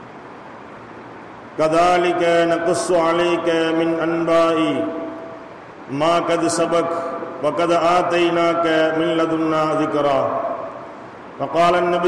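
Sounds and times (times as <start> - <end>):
man chanting melodic recitation: 1.6 - 5.2, 5.9 - 10.8, 11.4 - 12.0.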